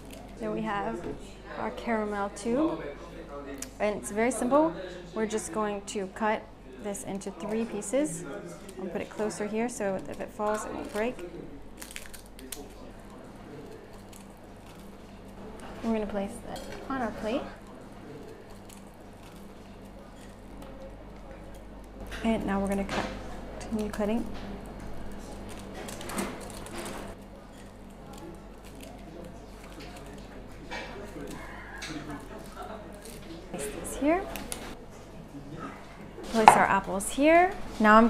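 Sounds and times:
low room hum: 0.0s - 38.0s
scissors snipping brittle caramel: 8.7s - 15.7s, 16.6s - 21.6s, 23.6s - 33.3s.

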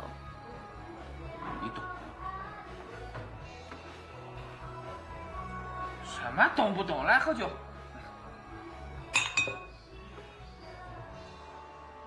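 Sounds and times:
glass beer mugs clinking: 9.1s - 9.8s.

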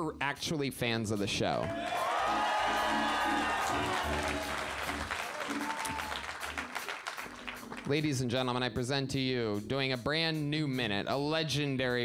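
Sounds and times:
audience cheering and applauding: 1.7s - 7.9s
band music with steady beat: 1.7s - 8.3s.

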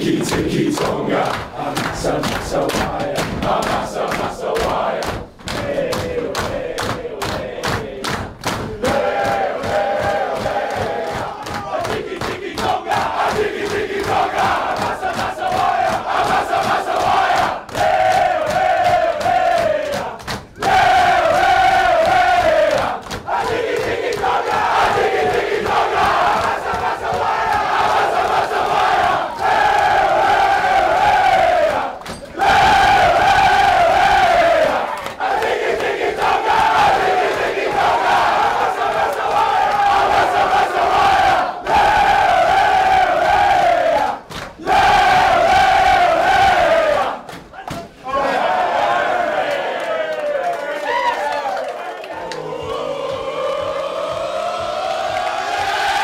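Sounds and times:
men chanting in unison: 0.0s - 47.2s.

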